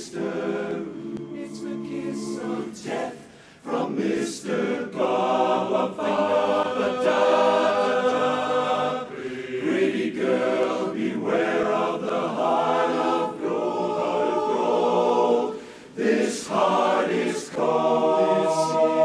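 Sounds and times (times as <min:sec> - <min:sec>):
men's chorus singing a cappella: 0:00.0 - 0:19.0.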